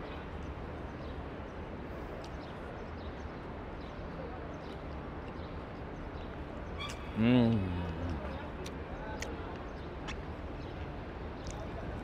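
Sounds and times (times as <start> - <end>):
faint chatter of people: 1.8 - 12.0.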